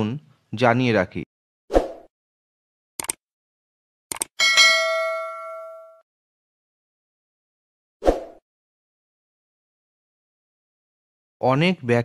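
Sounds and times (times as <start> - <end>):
bright bell chime: 4.4 - 6.0.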